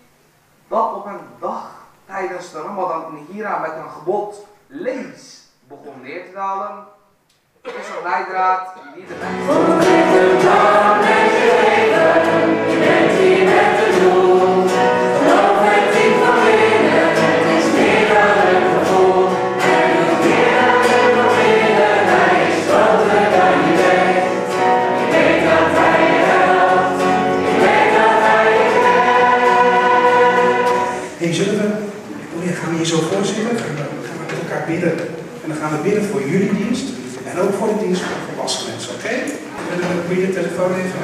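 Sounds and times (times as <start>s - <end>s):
acoustic guitar: 8.8s - 35.4s
voices singing together: 9.1s - 31.3s
woman singing: 9.2s - 11.3s.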